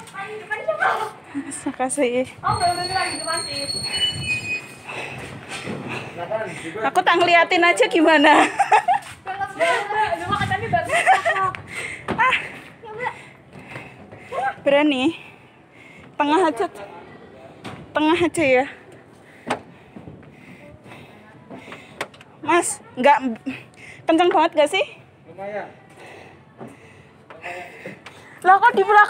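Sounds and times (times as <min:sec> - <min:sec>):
faint distant voices: 0:04.9 - 0:24.1, 0:24.8 - 0:29.0.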